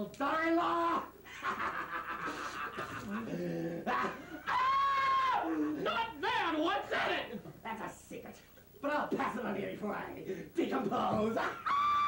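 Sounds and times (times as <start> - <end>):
person shrieking: 4.4 - 6.0, 11.6 - 12.0.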